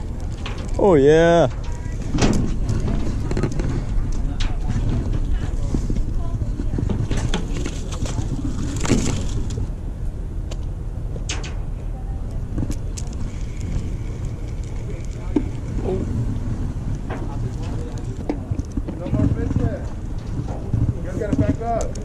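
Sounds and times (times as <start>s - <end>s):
indistinct chatter: 0.0s - 22.0s
steady low rumble: 0.0s - 22.0s.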